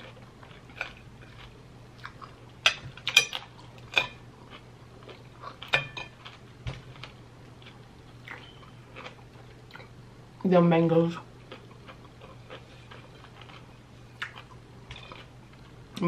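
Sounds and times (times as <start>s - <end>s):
person chewing crunchy cucumber: 0.0s - 10.0s, 11.4s - 16.0s
low steady hum: 0.0s - 16.0s.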